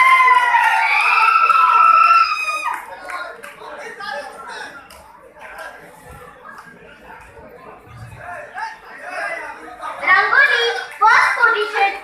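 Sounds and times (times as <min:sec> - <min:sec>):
quiet chatter: 0:02.6 - 0:12.0.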